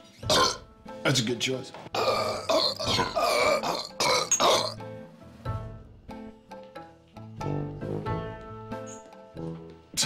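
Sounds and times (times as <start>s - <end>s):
soft music: 0.0s - 10.0s
person belching loudly: 0.3s - 0.6s, 2.0s - 4.8s.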